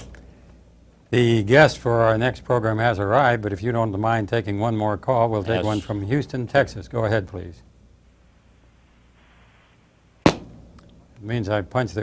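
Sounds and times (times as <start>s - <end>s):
faint phone line hiss: 8.0s - 10.2s.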